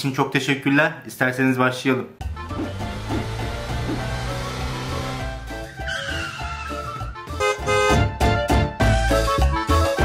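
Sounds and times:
music: 0:02.2 - 0:10.0
squeal falling in pitch: 0:05.8 - 0:07.0.

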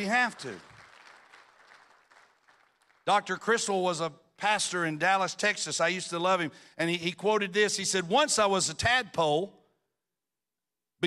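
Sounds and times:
faint applause: 0:00.1 - 0:03.1.

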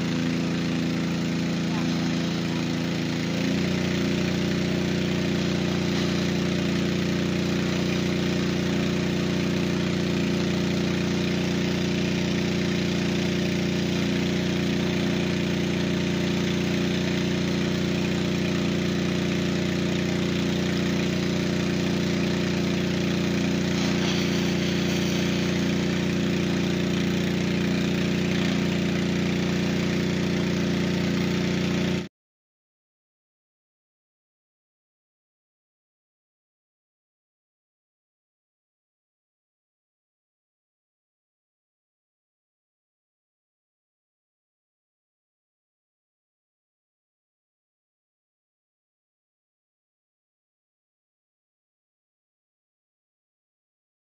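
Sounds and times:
water pump engine running: 0:00.0 - 0:32.1
water jet hissing: 0:00.2 - 0:09.5, 0:23.0 - 0:30.2.

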